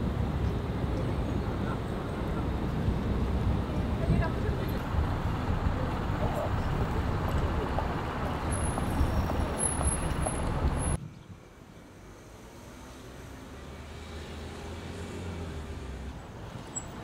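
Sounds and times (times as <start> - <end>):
bus approaching: 0.0 - 17.0
quiet outdoor ambience: 0.0 - 17.0
rumble of road traffic: 0.0 - 17.0.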